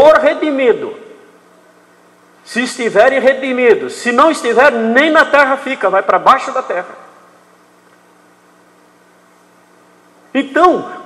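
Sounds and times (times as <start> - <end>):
faint electrical hum with hiss: 0.0 - 11.0.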